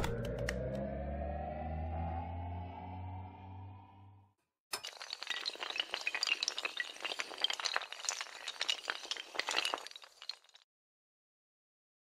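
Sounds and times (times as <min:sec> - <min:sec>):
glassy clinks and clatters: 0:04.8 - 0:10.6.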